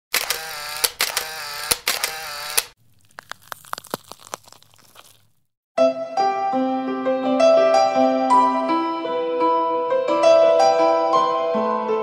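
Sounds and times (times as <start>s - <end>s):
piano music: 5.8s - 12.0s.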